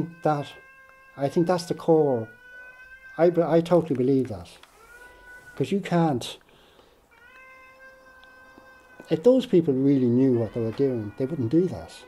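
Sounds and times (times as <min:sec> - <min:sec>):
cat meowing: 0:00.0 - 0:05.8, 0:07.1 - 0:12.0.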